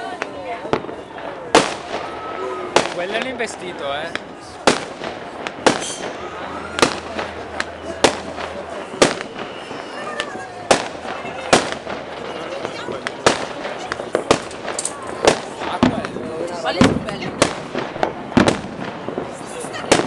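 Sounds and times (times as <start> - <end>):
firework bangs: 0.0 - 20.0
firework crackling: 0.0 - 20.0.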